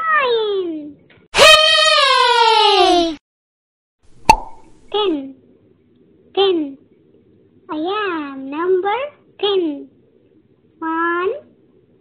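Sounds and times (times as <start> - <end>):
cartoon pop click: 4.2 - 4.7.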